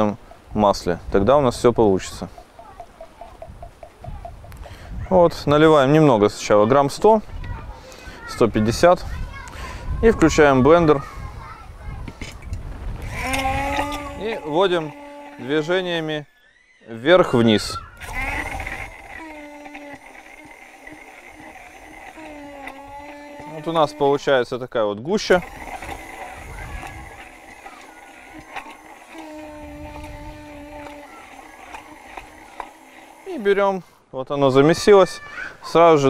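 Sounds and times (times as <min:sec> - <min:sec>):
immersion blender motor humming: 0:13.0 - 0:16.2, 0:17.4 - 0:24.5, 0:25.2 - 0:34.0.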